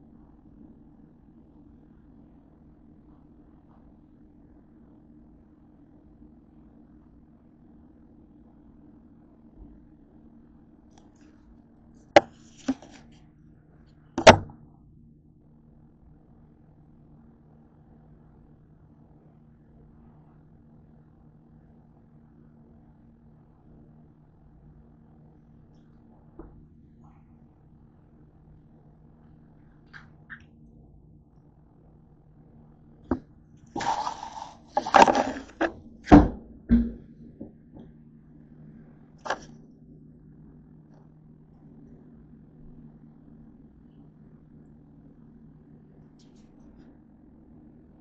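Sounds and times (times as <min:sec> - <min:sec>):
dull thumps of camera handling: 0:12.2 - 0:13.0, 0:14.2 - 0:14.5
sharp knocks on a desk: 0:14.2 - 0:14.5.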